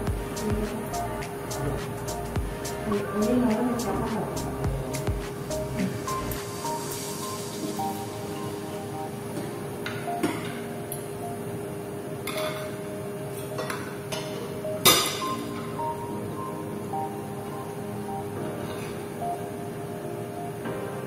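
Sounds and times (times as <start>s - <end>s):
background music: 0.0s - 21.0s
cutlery clinking on plates: 12.2s - 12.8s.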